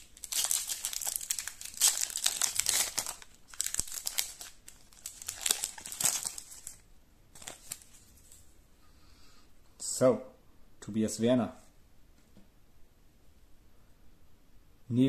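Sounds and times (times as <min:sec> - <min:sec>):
foil pack crinkling: 0:00.0 - 0:08.4.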